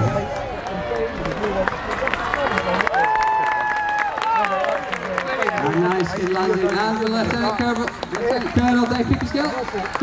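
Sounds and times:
crowd cheering: 0:00.0 - 0:10.0
crowd clapping: 0:00.0 - 0:10.0.

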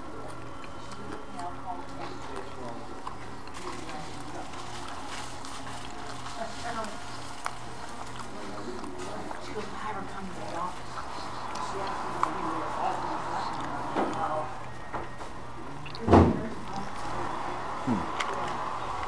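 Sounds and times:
indistinct chatter of diners: 0:00.0 - 0:19.0.

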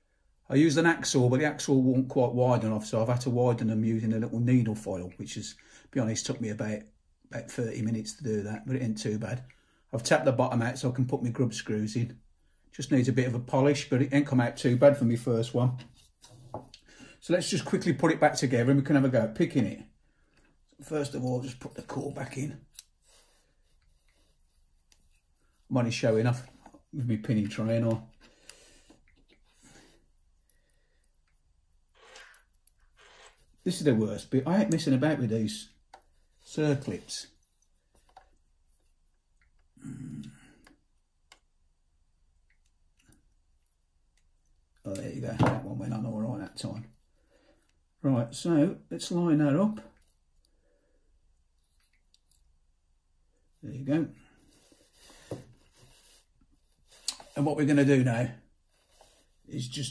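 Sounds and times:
faint handling sounds: 0:11.8 - 0:41.6, 0:49.8 - 0:59.9
soft rustle: 0:15.7 - 0:17.3, 0:20.1 - 0:34.0, 0:53.4 - 0:59.9
faint small clicks: 0:39.3 - 0:41.5, 0:51.6 - 0:52.5.

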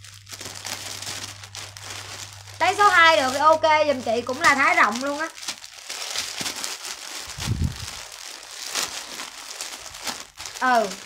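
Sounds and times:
plastic bags crinkling: 0:00.0 - 0:11.0
dull low bump: 0:07.4 - 0:08.0.

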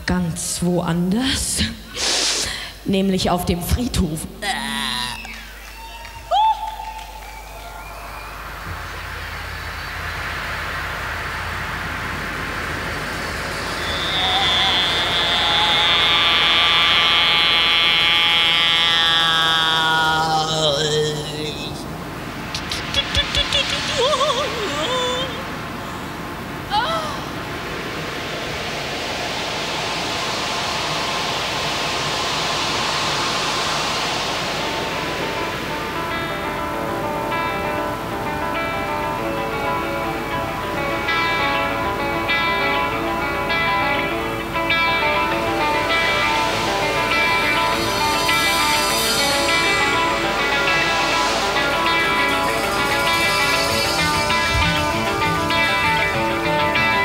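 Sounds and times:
hissing swell: 0:01.7 - 0:02.9, 0:05.2 - 0:57.0
high tones sliding downward: 0:04.4 - 0:57.0.

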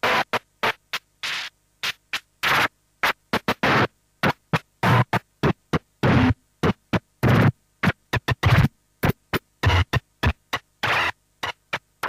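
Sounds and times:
glitchy distorted electronic music: 0:07.2 - 0:11.6.

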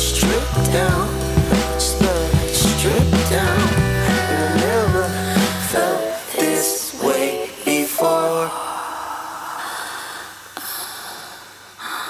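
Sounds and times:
soul song on vinyl record: 0:00.0 - 0:09.4.

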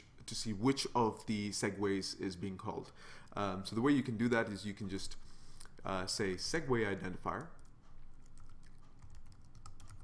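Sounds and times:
computer keyboard typing: 0:06.7 - 0:10.0.

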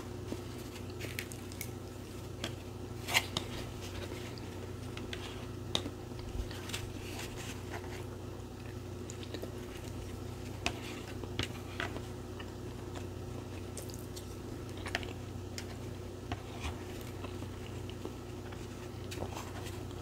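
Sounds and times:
person chewing soft food: 0:00.0 - 0:20.0
steady low hum: 0:00.0 - 0:20.0.

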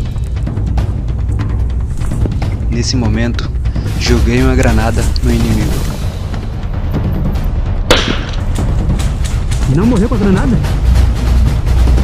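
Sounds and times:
background music: 0:00.0 - 0:12.0
grenade bang: 0:07.9 - 0:08.4.

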